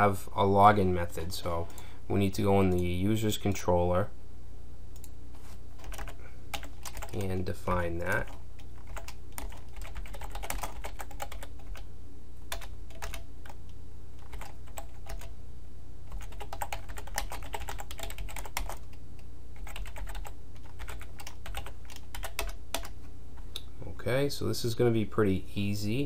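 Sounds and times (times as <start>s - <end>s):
steady low hum: 0.0s - 26.0s
computer keyboard typing: 5.8s - 7.4s, 8.0s - 11.8s, 12.5s - 13.6s, 14.2s - 15.3s, 16.1s - 19.0s, 19.6s - 23.0s.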